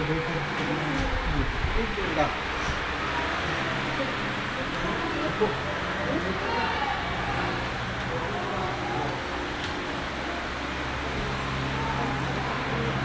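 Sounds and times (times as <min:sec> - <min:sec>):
indistinct talking: 0:00.0 - 0:13.0.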